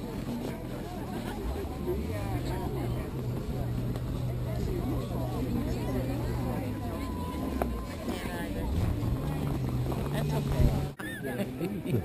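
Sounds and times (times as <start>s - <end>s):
low motor hum: 0.0s - 11.0s
distant chatter of voices: 0.0s - 12.0s.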